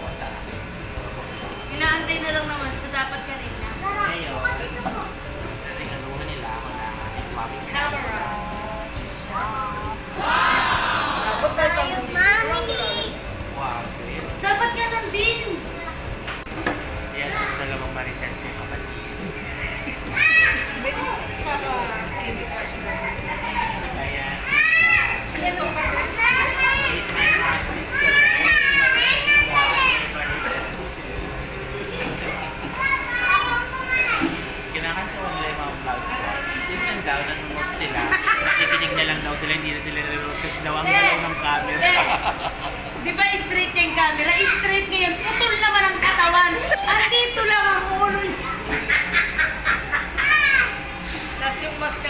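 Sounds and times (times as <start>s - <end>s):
people laughing hard: 41.8s - 43.0s, 48.7s - 50.5s.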